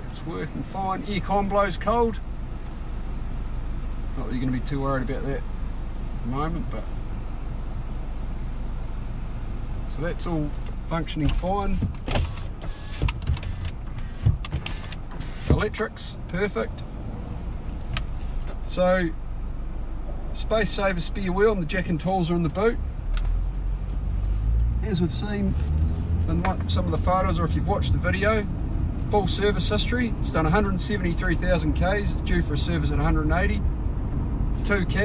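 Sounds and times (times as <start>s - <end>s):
car engine hum: 0.0s - 35.0s
tyres on road: 0.0s - 35.0s.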